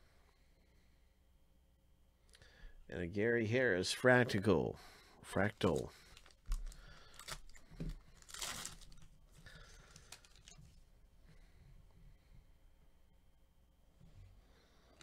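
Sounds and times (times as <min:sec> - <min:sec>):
card pack wrapper crinkling: 0:05.6 - 0:09.2, 0:09.8 - 0:10.6
wrapper ripping: 0:06.1 - 0:09.2, 0:09.9 - 0:10.6.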